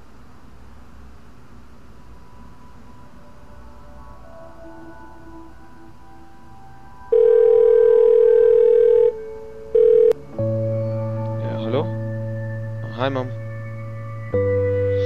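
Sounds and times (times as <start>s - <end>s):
soft background music: 1.0s - 15.0s
telephone ringback tone: 7.1s - 10.2s.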